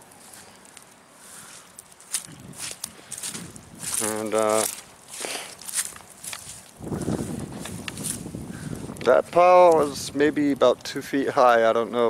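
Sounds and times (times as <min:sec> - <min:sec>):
footsteps on dry grass and leaves: 0:00.0 - 0:10.5.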